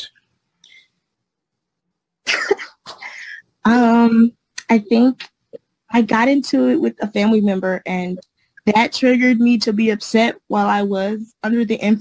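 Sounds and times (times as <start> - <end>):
woman coughing: 2.3 - 3.3.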